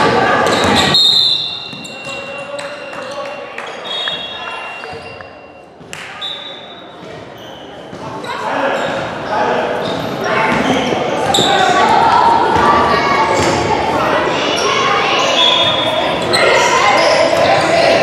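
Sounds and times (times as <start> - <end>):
indistinct echoing voices: 0.0 - 18.0.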